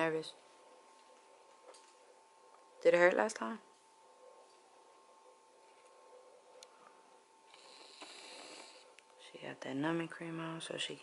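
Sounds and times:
faint steady hum: 0:00.0 - 0:11.0
faint breathy hiss: 0:07.5 - 0:09.3.

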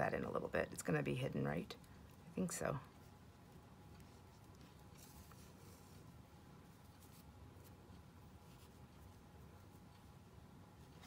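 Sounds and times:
faint rustles of hands crocheting: 0:00.0 - 0:11.0.

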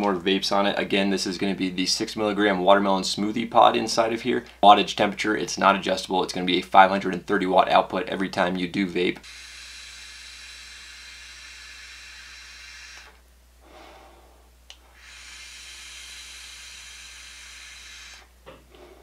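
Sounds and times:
vape draw hiss: 0:09.2 - 0:19.0
soft exhale: 0:13.6 - 0:15.0, 0:18.7 - 0:19.0.

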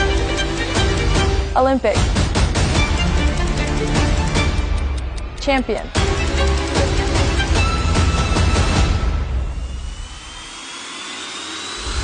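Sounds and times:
bass music: 0:00.0 - 0:09.9.

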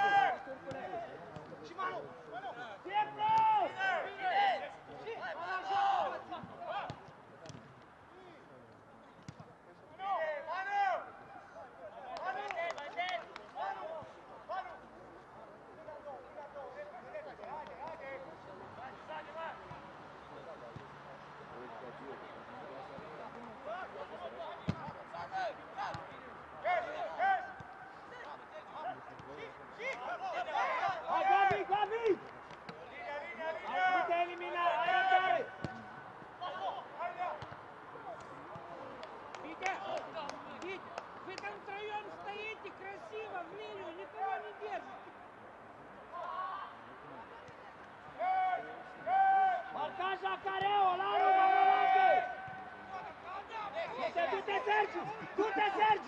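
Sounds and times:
men shouting calls: 0:00.0 - 0:07.0, 0:29.7 - 0:32.2, 0:33.0 - 0:37.4, 0:48.2 - 0:56.0.

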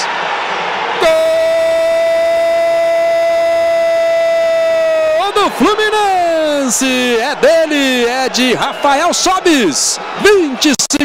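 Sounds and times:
commentator shouting goal call: 0:01.0 - 0:11.0.

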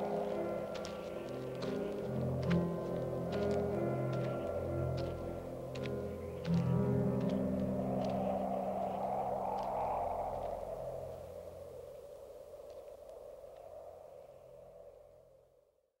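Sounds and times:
low drone of held tones: 0:00.0 - 0:11.7
rushing noise: 0:00.0 - 0:12.6.

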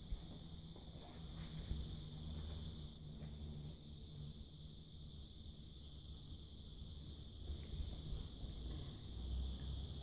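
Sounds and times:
steady high hiss: 0:00.0 - 0:10.0
steady low hum: 0:00.0 - 0:10.0.

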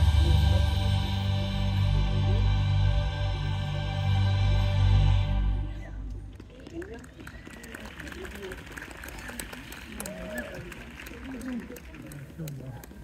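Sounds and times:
crowd murmur: 0:00.0 - 0:13.0.

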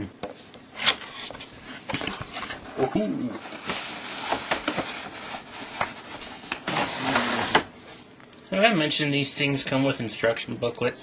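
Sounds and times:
plastic and cardboard packaging rustling: 0:00.7 - 0:07.7.

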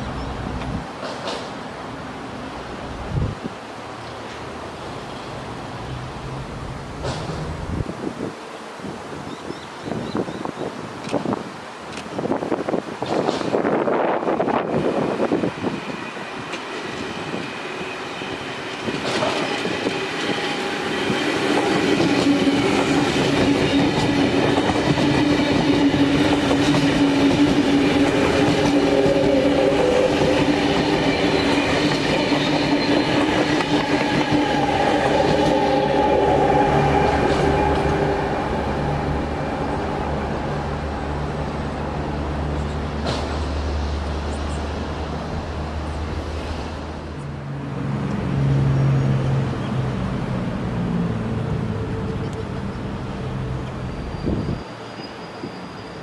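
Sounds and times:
electric train motors humming: 0:14.6 - 0:42.8.

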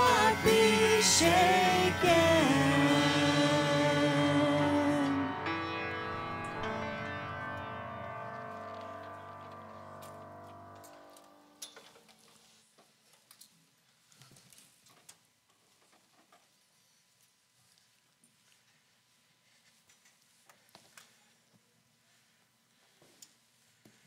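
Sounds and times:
band chord ringing out: 0:00.0 - 0:11.6.

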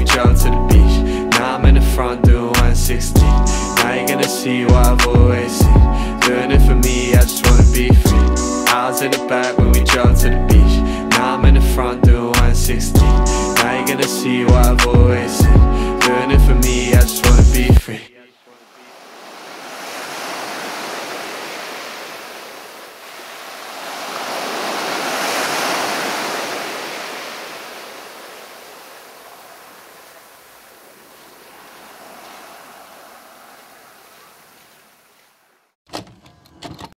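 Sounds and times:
waves washing up pebbly beach: 0:18.7 - 0:35.2.

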